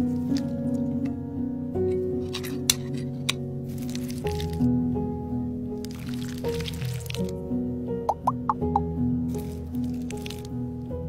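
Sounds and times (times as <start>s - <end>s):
background music with held notes: 0.0s - 11.0s
spoon squishing in cat food: 3.7s - 4.6s, 5.8s - 7.3s, 9.3s - 10.5s.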